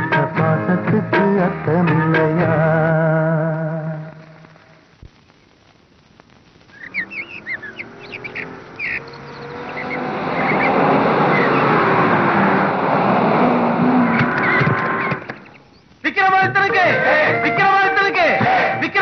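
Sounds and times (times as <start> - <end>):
birds chirping: 6.6 - 12.8, 13.8 - 18.9
cars driving up: 6.8 - 15.6.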